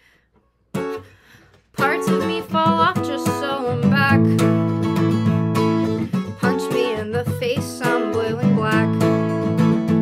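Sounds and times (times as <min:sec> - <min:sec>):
acoustic guitar strumming: 0:01.8 - 0:10.0.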